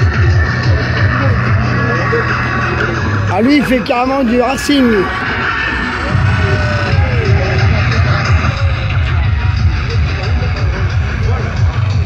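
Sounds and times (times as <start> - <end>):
bass-heavy electronic music: 0.0 - 12.0.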